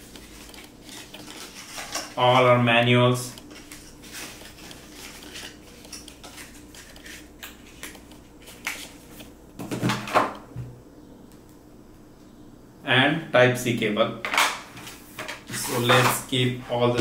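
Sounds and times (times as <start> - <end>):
paper rustling: 0.1 - 2.6, 3.4 - 9.1.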